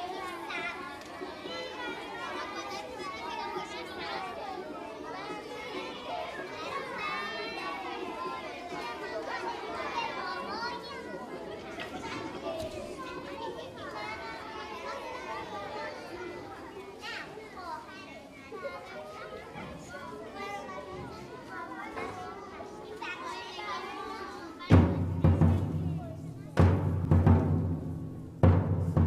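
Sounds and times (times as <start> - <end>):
children chattering and calling out: 0.0 - 29.0.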